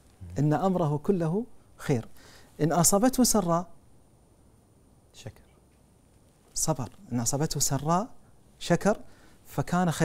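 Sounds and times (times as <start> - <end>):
faint vocal sound: 0.0 - 0.8
man speaking: 0.2 - 3.8, 6.6 - 10.0.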